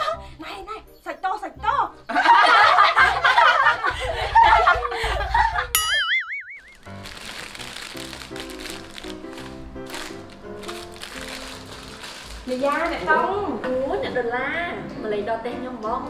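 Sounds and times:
low background music: 0.0s - 5.6s, 6.7s - 16.0s
women laughing: 2.1s - 5.8s
wobbling boing sound effect: 5.8s - 6.8s.

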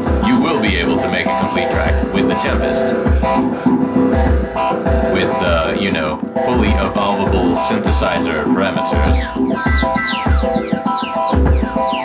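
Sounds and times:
drum machine beat: 0.0s - 12.0s
synth bass notes: 0.0s - 12.0s
sustained synth tones: 8.6s - 12.0s.

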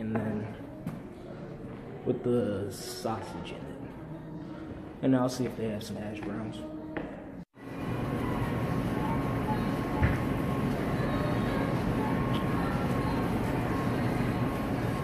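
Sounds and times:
kitchen ventilation hum: 7.6s - 15.0s.

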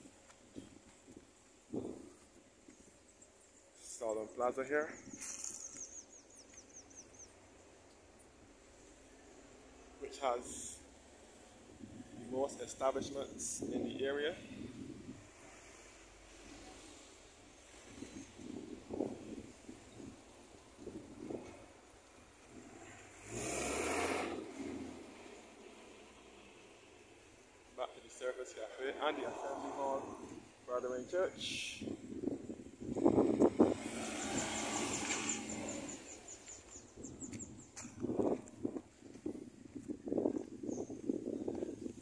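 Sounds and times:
road traffic: 0.0s - 42.0s
bird high chirps: 4.8s - 7.4s
minibus passing close by: 32.9s - 36.9s.

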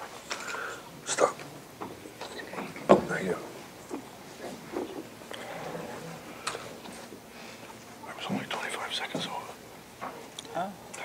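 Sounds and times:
low whispered talk: 1.0s - 1.4s, 2.2s - 3.6s, 8.0s - 9.6s, 10.8s - 11.0s.

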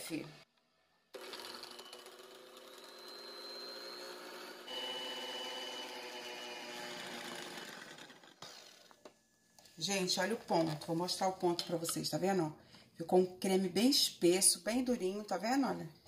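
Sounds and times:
electric hand mixer running: 1.2s - 8.9s.

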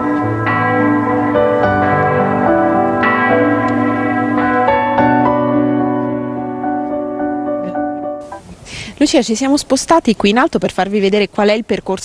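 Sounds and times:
church bells ringing: 0.0s - 8.3s.

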